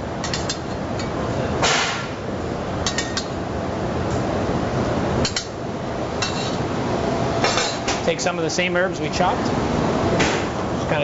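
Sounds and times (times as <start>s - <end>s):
kitchen background hum: 0.0s - 11.0s
utensils clinking on cookware: 6.2s - 6.6s.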